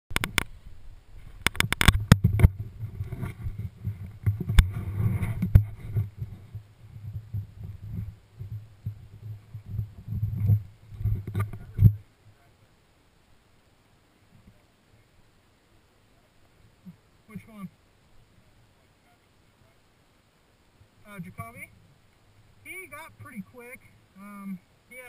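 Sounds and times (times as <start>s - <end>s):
rumbling and rubbing on microphone: 0.1s - 12.6s
camera housing clicks and knocks: 1.4s - 2.6s.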